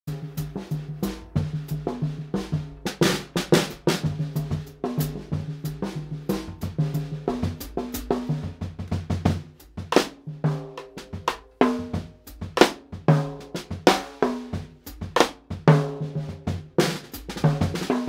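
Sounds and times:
drum kit playing: 0.1 - 18.0.

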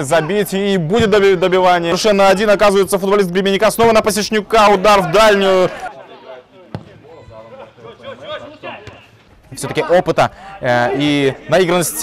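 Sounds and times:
football kicked hard: 6.7 - 7.0.

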